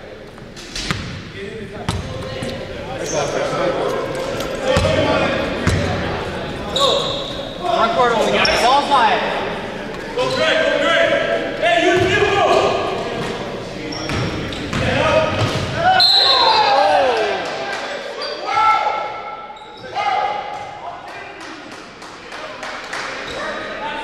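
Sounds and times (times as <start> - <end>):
players shouting: 14.8 - 21.0.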